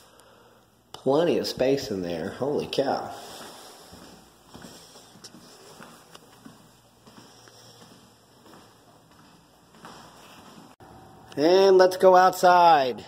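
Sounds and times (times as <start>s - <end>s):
footsteps on tile floor: 1.5s - 10.8s.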